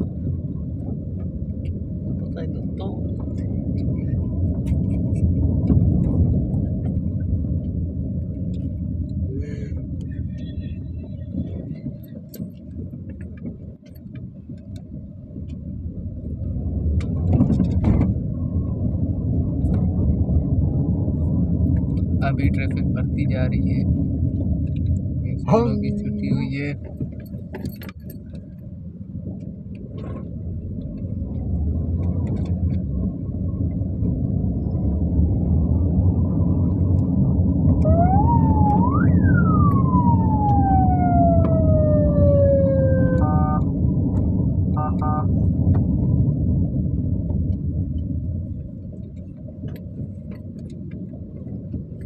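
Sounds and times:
car engine and road rumble: 0.0 - 52.0
siren wail: 37.8 - 43.9, 44.8 - 45.4
short horn beeps: 44.8 - 45.3.

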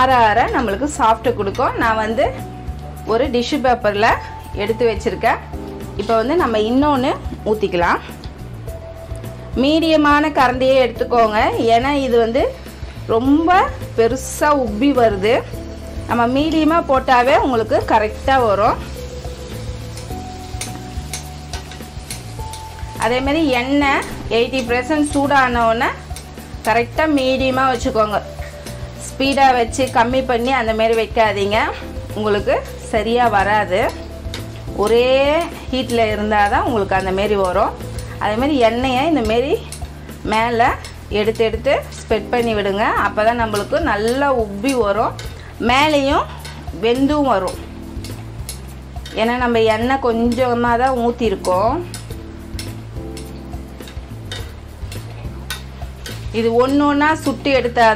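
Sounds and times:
background music: 0.0 - 57.9
batter sizzling in hot oil: 0.0 - 57.9.

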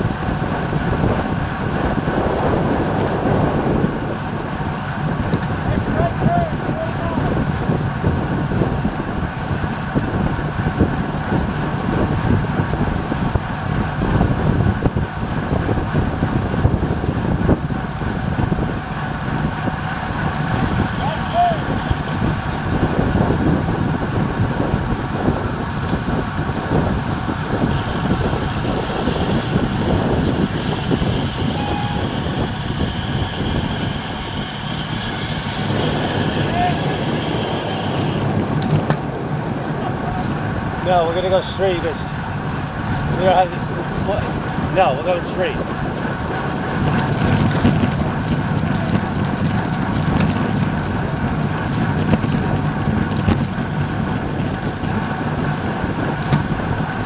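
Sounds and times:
bike tyres humming on asphalt: 0.0 - 57.0
wind rush on microphone: 0.0 - 57.0.

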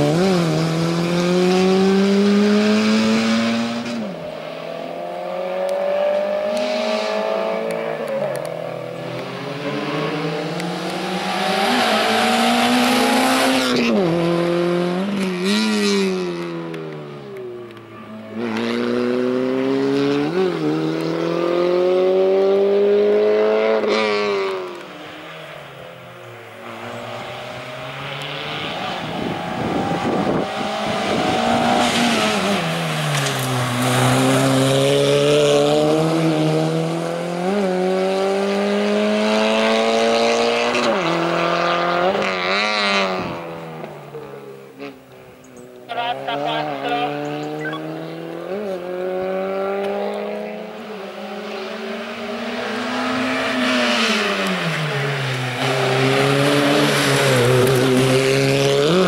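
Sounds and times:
car engine revving: 0.0 - 45.1, 45.8 - 59.0.

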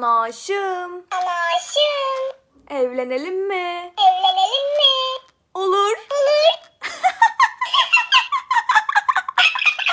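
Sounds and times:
toy squeaky chirps: 4.0 - 5.3.

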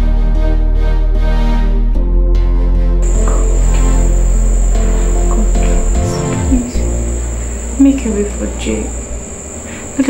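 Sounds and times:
soft background music: 0.1 - 9.0
crickets chirring: 3.0 - 10.0.

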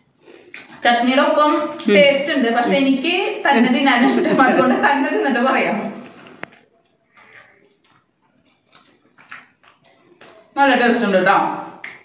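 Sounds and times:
person chewing: 6.1 - 10.6.

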